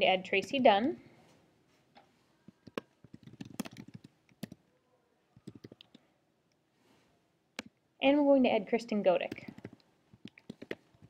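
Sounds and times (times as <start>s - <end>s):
computer keyboard typing: 2.5s - 4.6s, 5.4s - 6.0s, 9.2s - 11.0s.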